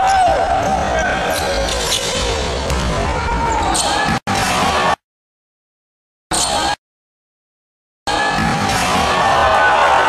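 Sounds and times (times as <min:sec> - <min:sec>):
basketball bouncing on court: 0:02.6 - 0:03.8.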